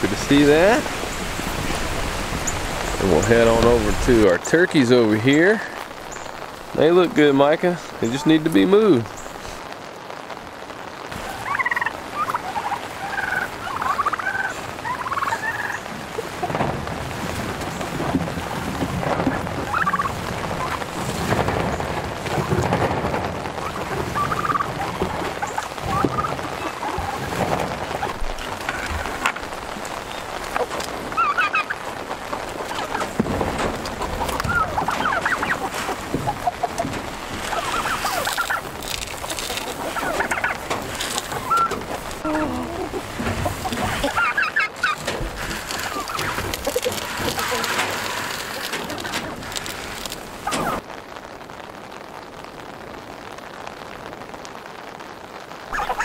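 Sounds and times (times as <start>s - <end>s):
turkeys yelping: 0.0s - 4.2s, 11.1s - 50.8s, 55.7s - 56.0s
falling rain hiss: 0.0s - 56.0s.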